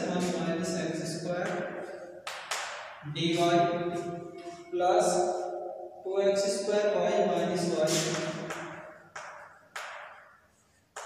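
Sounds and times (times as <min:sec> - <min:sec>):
chalk tapping on blackboard: 0:07.9 - 0:10.3.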